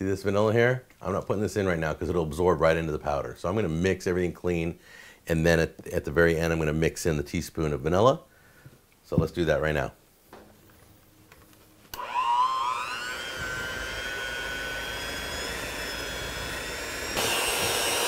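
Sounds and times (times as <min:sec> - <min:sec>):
electric hand mixer whine: 0:12.0 - 0:18.0.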